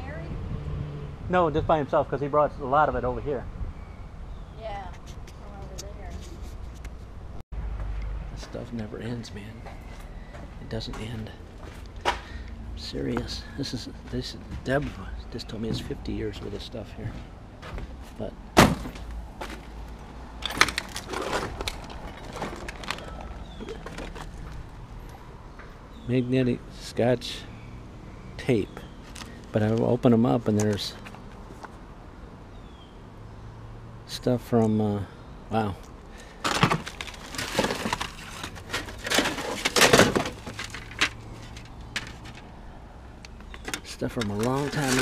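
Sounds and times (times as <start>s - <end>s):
rummaging through junk: 17.1s - 24.8s, 29.0s - 29.9s, 36.2s - 42.6s, 43.3s - 45.0s
cardboard boxes rustling and clattering: 17.7s - 19.7s, 20.4s - 24.8s, 36.3s - 42.5s, 43.4s - 45.0s
sharp clicks and knocks: 43.2s - 45.0s.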